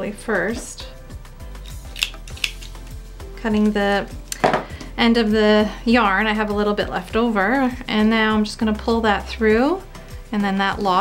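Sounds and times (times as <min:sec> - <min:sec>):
soft background music: 0:00.0 - 0:11.0
scissors snipping yarn: 0:01.7 - 0:02.8.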